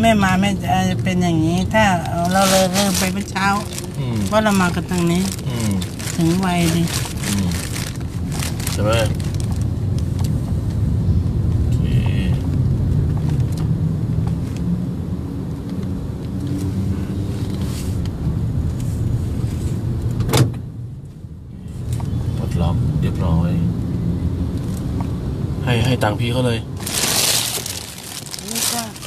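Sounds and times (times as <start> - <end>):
car interior road and engine rumble: 0.0 - 29.0.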